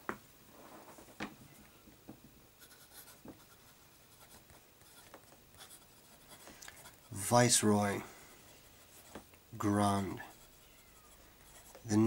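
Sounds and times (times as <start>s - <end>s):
fountain pen scratching on paper: 2.6s - 7.1s, 8.6s - 12.0s.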